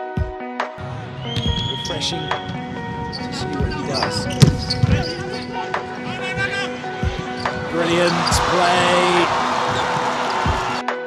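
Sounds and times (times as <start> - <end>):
background music: 0.0 - 11.0
crowd noise: 0.8 - 11.0.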